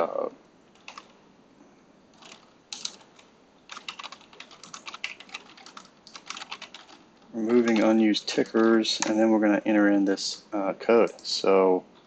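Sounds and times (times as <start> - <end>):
keyboard typing: 0.8 - 1.2, 2.2 - 9.2.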